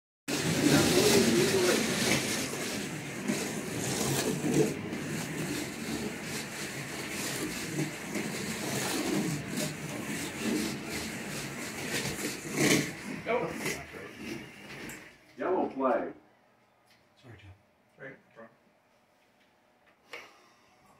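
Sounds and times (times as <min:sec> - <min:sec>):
slot cars whirring: 0:00.3 - 0:15.1.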